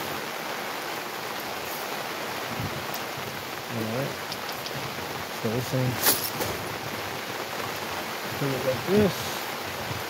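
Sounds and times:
rain hiss: 0.0s - 10.0s.

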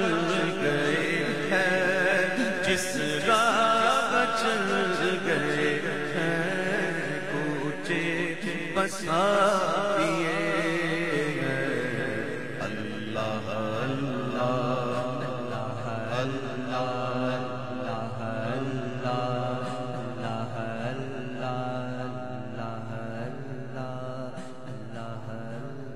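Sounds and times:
man chanting melodically: 0.0s - 25.9s.

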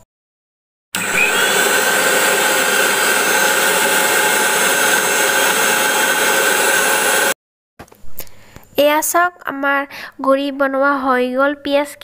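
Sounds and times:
mixer grinder motor whine: 1.0s - 7.4s.

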